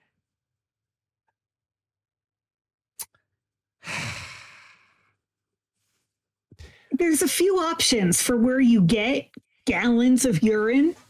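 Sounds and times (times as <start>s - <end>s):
person sighing: 3.8s - 5.0s.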